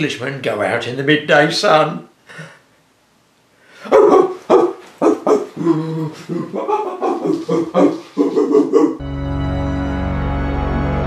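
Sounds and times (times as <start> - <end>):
excited barks and yelps: 3.8 - 9.0
person laughing: 5.2 - 9.0.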